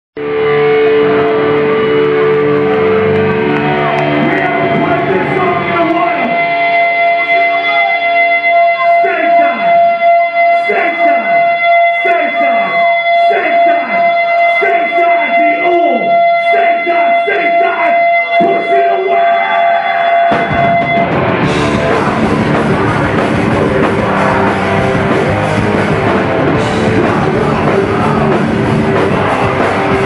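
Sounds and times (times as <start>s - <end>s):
guitar feedback whine: 0.2s - 30.0s
punk band playing live: 0.2s - 30.0s
drums crashing: 20.2s - 30.0s.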